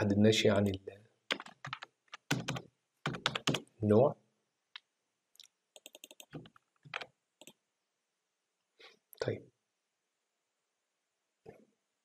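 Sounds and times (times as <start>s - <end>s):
keyboard and mouse clicks: 0.6s - 3.6s, 4.8s - 7.6s.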